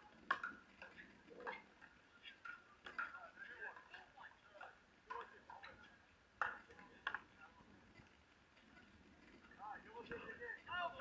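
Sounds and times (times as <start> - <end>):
pickleball paddles hitting ball: 0.2 - 7.4.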